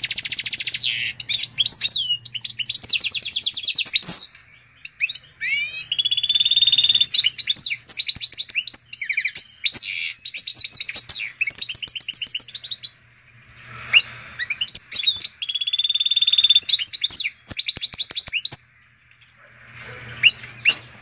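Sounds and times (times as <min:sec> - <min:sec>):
bird singing rattling trills: 0:00.0 - 0:21.0.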